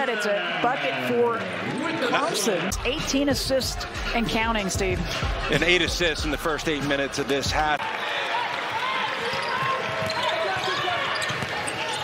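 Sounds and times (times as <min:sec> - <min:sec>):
arena crowd murmur: 0:00.0 - 0:12.0
sneakers squeaking: 0:08.7 - 0:12.0
basketball dribbling: 0:09.2 - 0:12.0.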